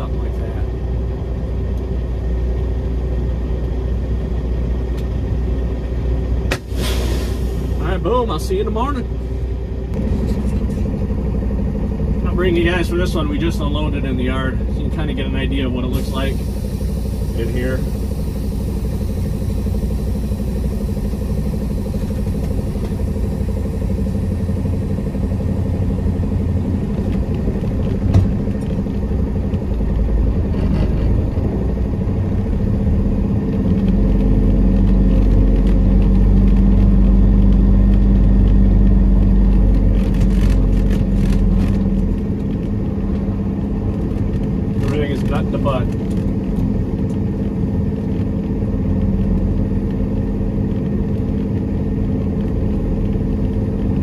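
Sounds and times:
truck diesel engine running: 0:00.0 - 0:54.0.

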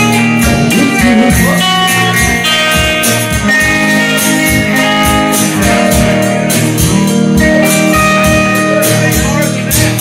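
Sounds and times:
bass guitar: 0:00.0 - 0:10.0
drum beat with cymbals: 0:00.0 - 0:10.0
guitar melody: 0:00.0 - 0:10.0.

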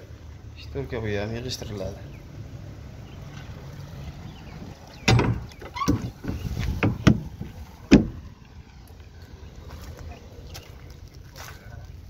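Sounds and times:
low rumble of truck cargo box: 0:01.9 - 0:11.2
loud bang of truck door: 0:05.0 - 0:08.2
thumps and clatter in cargo box: 0:05.1 - 0:08.2.

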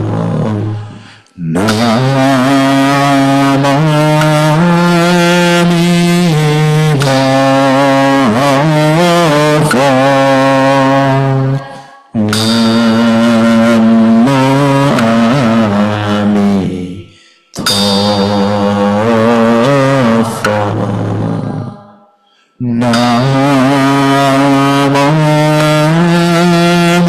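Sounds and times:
slow melodic chanting: 0:00.0 - 0:27.0.

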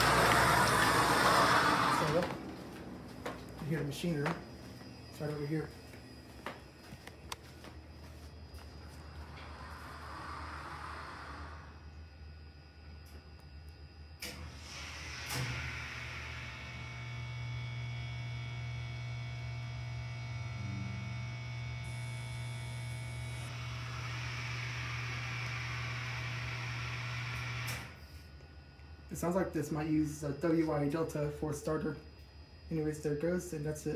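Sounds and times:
elevator pump motor humming: 0:00.0 - 0:07.6, 0:08.6 - 0:29.4.

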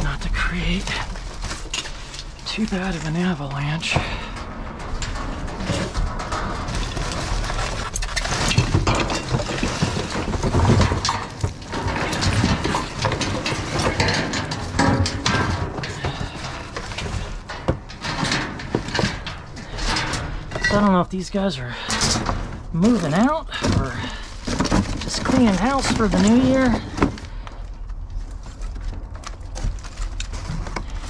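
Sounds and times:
junk rustling and clattering: 0:00.0 - 0:31.0.

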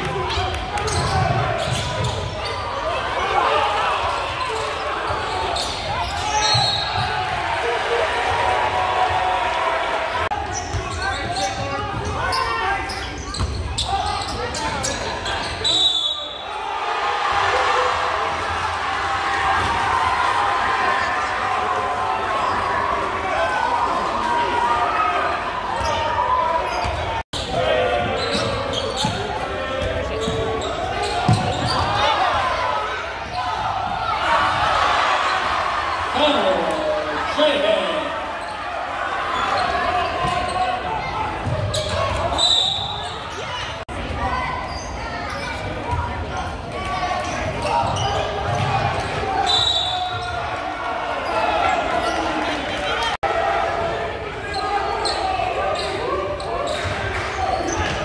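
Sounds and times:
hubbub of crowd voices: 0:00.0 - 0:58.0.

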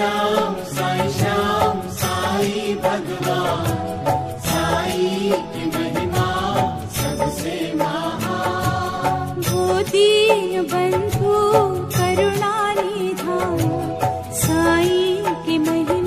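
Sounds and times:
devotional chant with instruments: 0:00.0 - 0:16.0.

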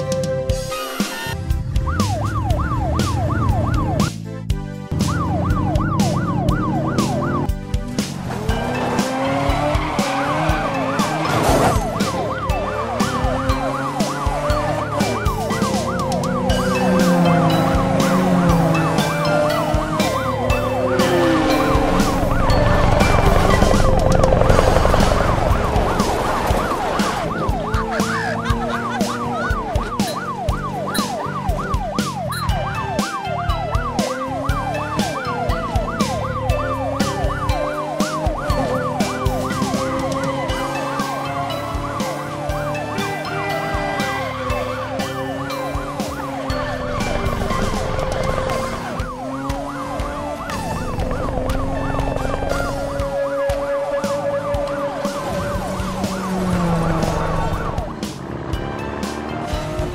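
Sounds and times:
background music with steady beat: 0:00.0 - 0:59.9
cartoon police siren yelp: 0:00.6 - 0:04.1, 0:04.9 - 0:07.5, 0:08.6 - 0:58.1.

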